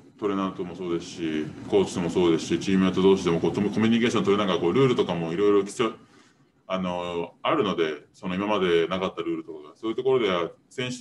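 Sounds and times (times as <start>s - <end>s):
man talking: 0.0s - 6.1s, 6.7s - 11.0s.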